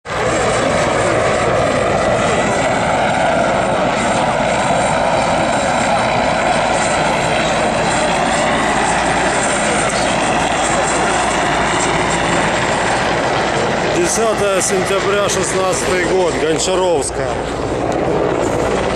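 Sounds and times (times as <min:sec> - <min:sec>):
helicopter flying low overhead: 0:00.0 - 0:18.9.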